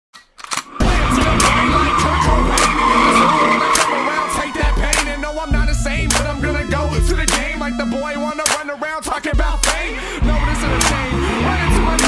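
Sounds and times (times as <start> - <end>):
car tyres squealing: 0.7 - 5.5, 10.0 - 12.0
hip-hop beat with heavy bass: 0.7 - 12.0.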